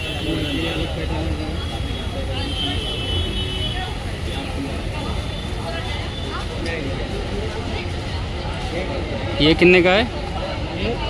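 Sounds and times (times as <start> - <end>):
indistinct voices and chatter: 0.0 - 11.0.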